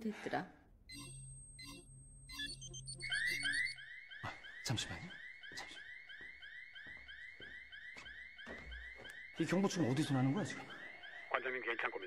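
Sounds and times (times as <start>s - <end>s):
security alarm chirping: 0.8s - 12.0s.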